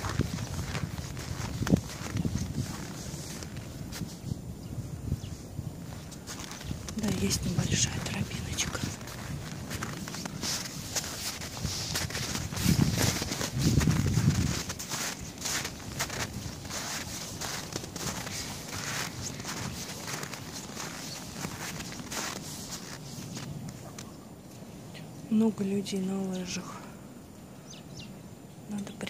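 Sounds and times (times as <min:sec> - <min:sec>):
footsteps crunching through snow: 0:00.0 - 0:24.2.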